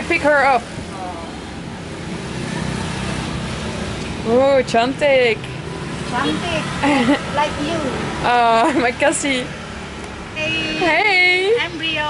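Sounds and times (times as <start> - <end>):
passing vehicle engines: 0.0 - 12.0
road traffic rumble: 0.0 - 12.0.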